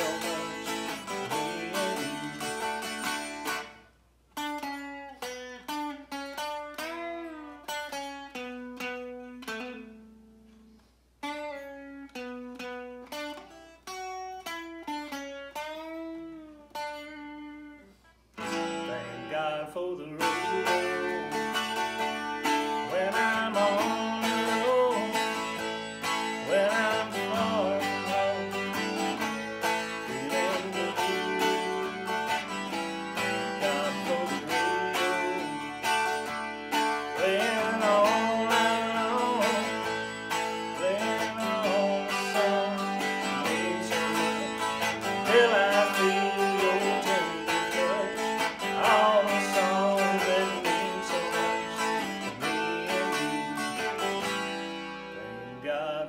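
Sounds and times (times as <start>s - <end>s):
country electric guitar melody: 0.0s - 56.0s.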